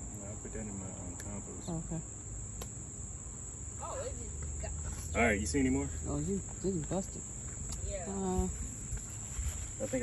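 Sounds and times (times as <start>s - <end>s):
insects trilling: 0.0s - 10.0s.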